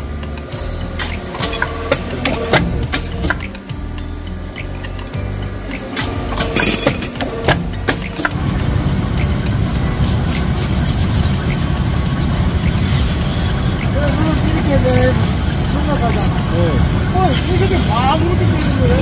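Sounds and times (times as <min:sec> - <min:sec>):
loud machine drone: 0:00.0 - 0:19.0
sharp metal clacks: 0:00.4 - 0:08.4.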